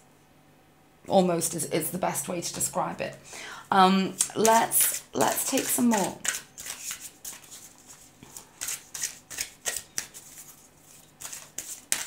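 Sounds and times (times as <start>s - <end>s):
cards being shuffled: 5.5s - 12.0s.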